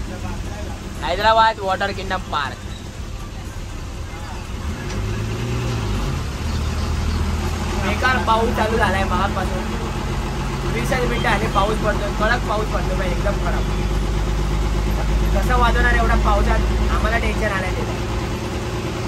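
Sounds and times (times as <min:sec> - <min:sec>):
man talking: 0:00.0 - 0:02.6
bus engine humming: 0:00.0 - 0:19.0.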